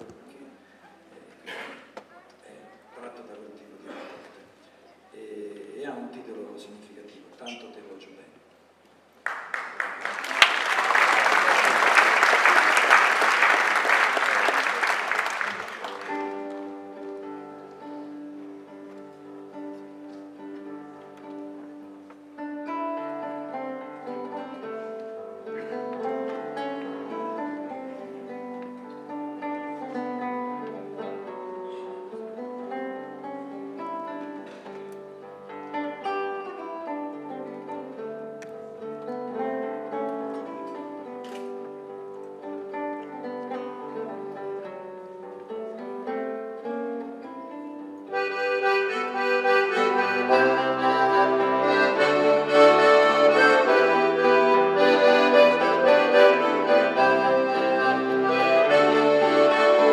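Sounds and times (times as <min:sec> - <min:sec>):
classical guitar fingerpicking: 0:16.0 - 0:59.9
folk ensemble with accordion: 0:47.8 - 0:59.9.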